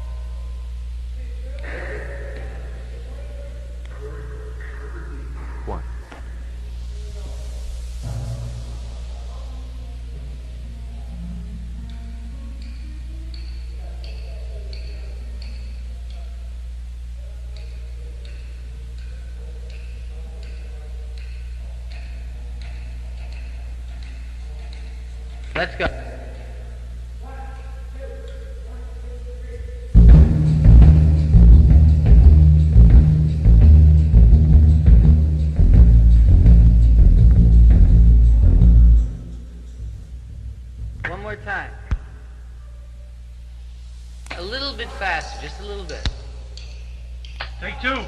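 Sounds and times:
electrical hum: 0:00.0 - 0:48.0
drum hits: 0:08.0 - 0:09.1, 0:30.0 - 0:42.2
sharp pinging ticks: 0:12.6 - 0:16.3, 0:17.5 - 0:25.6.

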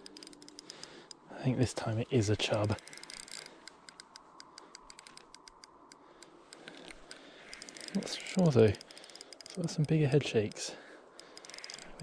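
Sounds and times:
fishing reel ticking: 0:00.0 - 0:12.0.

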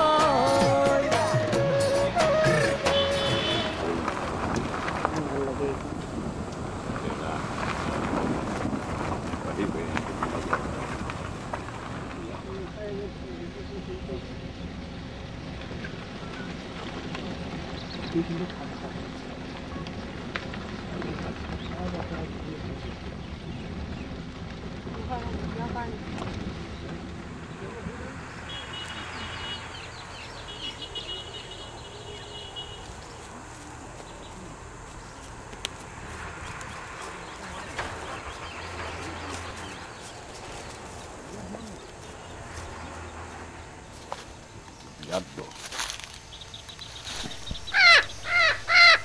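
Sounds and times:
voices: 0:00.0 - 0:08.4, 0:11.9 - 0:14.8, 0:18.0 - 0:23.2, 0:24.9 - 0:26.3, 0:27.4 - 0:46.8
low outdoor rumble: 0:00.0 - 0:49.0
crows cawing: 0:47.6 - 0:49.0.

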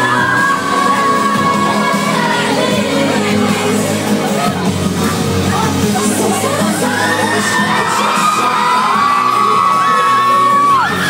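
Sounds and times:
crowd screaming and cheering: 0:00.0 - 0:11.0
live pop music: 0:00.0 - 0:11.0
long high scream: 0:07.0 - 0:11.0.

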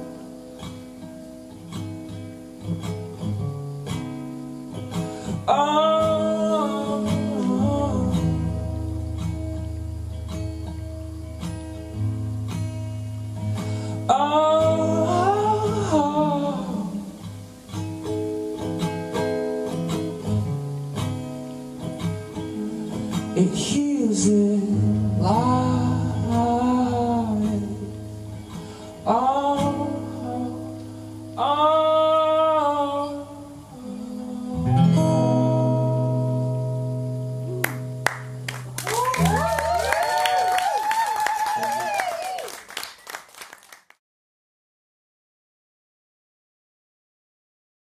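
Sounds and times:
acoustic guitars strumming: 0:00.0 - 0:40.8.

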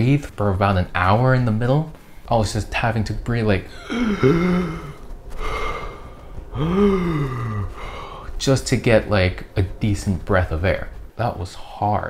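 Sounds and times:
man breathing hard: 0:03.7 - 0:08.4.

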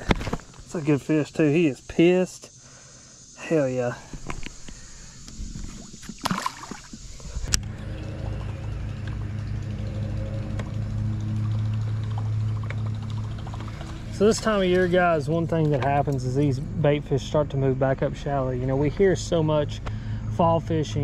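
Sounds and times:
electric trolling motor humming: 0:04.2 - 0:17.4.

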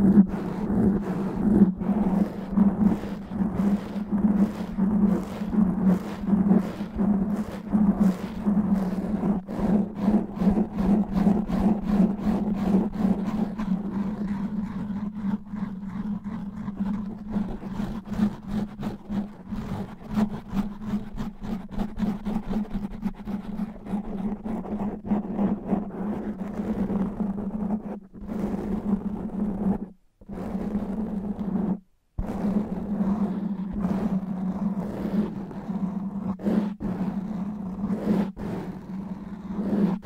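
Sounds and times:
fingernails scratching foam windscreen: 0:00.0 - 0:40.0.

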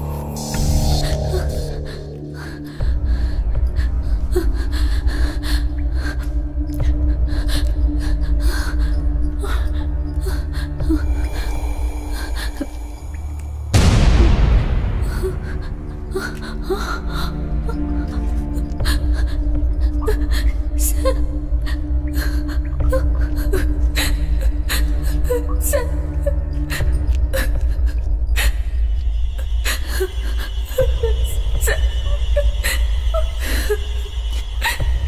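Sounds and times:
low droning horror score: 0:00.0 - 0:35.0.

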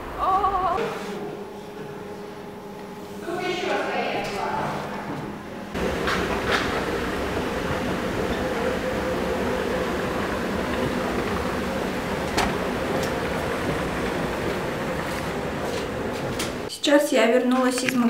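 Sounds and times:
escalator mechanical rumble: 0:05.3 - 0:16.7.

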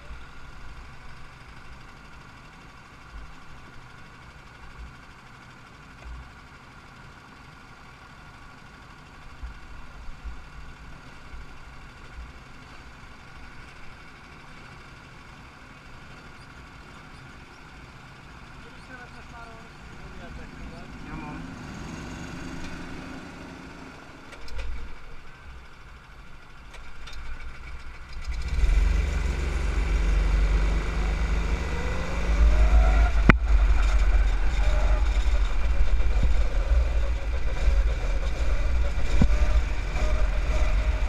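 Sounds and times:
go-kart engines idling: 0:00.0 - 0:41.0.

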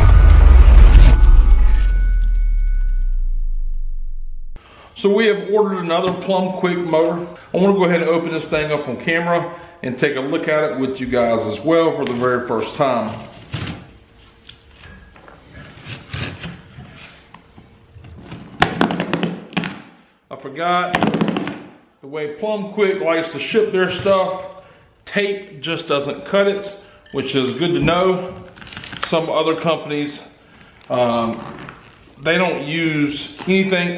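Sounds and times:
deep booming rumble: 0:00.0 - 0:04.6
high ringing tones: 0:00.0 - 0:04.6
knife slitting packing tape: 0:15.6 - 0:17.3.

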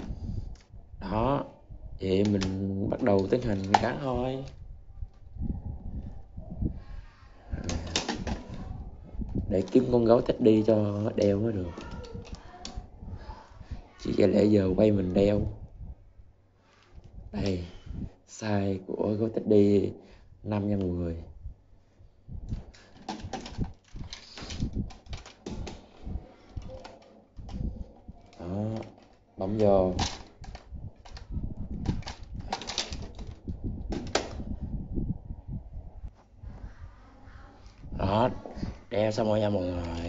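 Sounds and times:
plastic clatter: 0:02.2 - 0:04.6, 0:07.6 - 0:08.7, 0:22.5 - 0:34.5
plastic toy parts clicking and rattling: 0:02.2 - 0:04.6, 0:07.6 - 0:08.6, 0:11.1 - 0:12.8, 0:22.6 - 0:34.4
plastic knocks and rustles: 0:07.6 - 0:08.7, 0:22.5 - 0:34.5.

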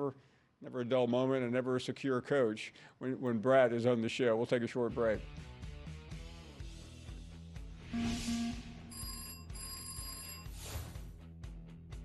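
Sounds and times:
music: 0:04.8 - 0:12.0
telephone ringing: 0:08.0 - 0:10.6.

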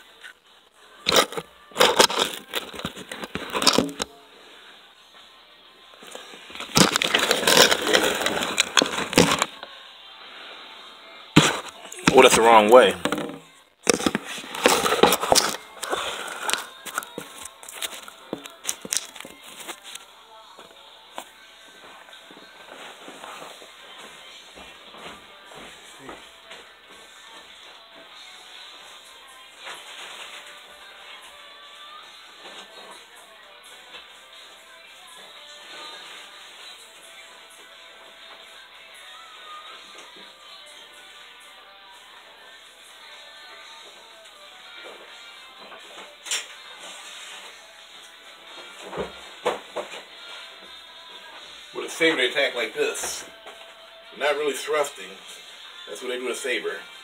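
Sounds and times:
faint background music: 0:00.0 - 0:57.0
phone being handled: 0:01.1 - 0:04.1, 0:06.6 - 0:09.6, 0:13.0 - 0:20.0.

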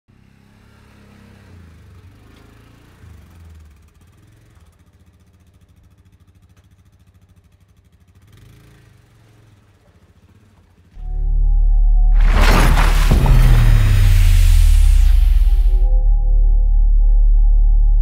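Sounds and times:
atv engine running: 0:00.1 - 0:11.1.

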